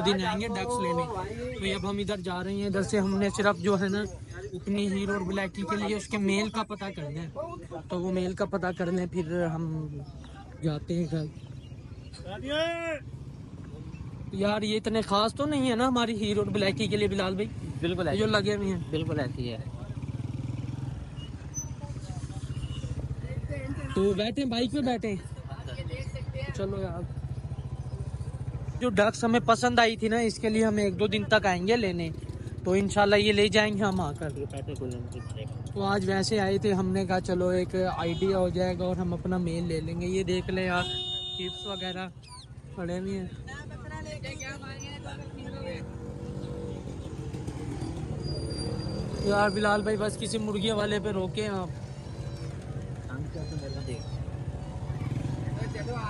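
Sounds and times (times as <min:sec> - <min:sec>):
people talking: 0:00.0 - 0:11.3
motorcycle engine idling: 0:00.0 - 0:56.0
small motorcycle engine running: 0:44.2 - 0:56.0.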